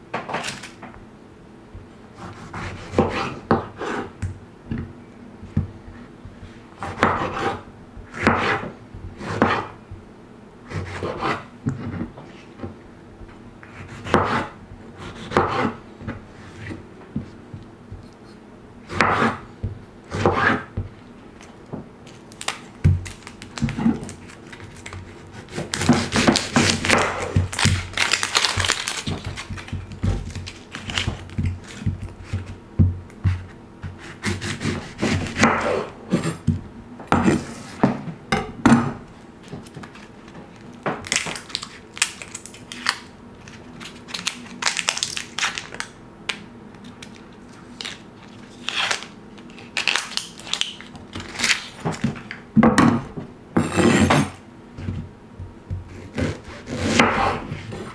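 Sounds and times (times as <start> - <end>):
onion skin crackling: 21.4 - 32.6, 39.5 - 51.8.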